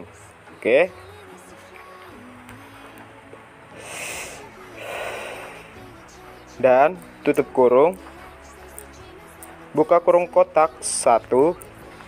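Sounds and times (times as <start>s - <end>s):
faint background music: 0.0s - 12.0s
breaths close to microphone: 3.7s - 5.8s.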